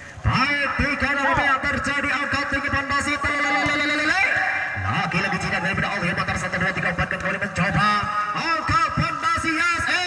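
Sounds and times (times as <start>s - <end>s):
people shouting and calling: 0.4s - 10.0s.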